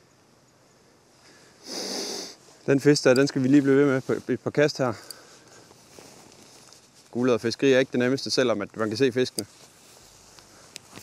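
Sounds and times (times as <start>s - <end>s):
man's sharp nasal breath: 1.2s - 2.6s.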